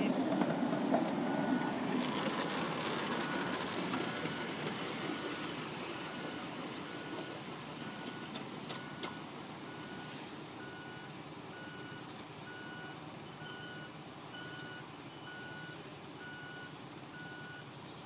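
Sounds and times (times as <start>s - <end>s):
steam locomotive running: 0.0s - 10.7s.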